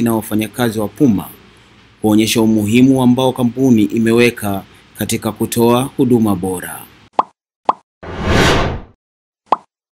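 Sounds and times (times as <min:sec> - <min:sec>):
noisy whoosh: 0:08.0 - 0:09.0.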